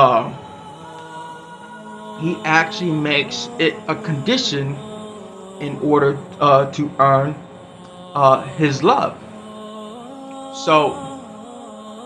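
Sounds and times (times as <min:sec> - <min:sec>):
man speaking word: 0:00.0 - 0:00.4, 0:02.2 - 0:04.8, 0:05.6 - 0:07.4, 0:08.2 - 0:09.2, 0:10.6 - 0:11.1
droning chords music: 0:00.0 - 0:12.0.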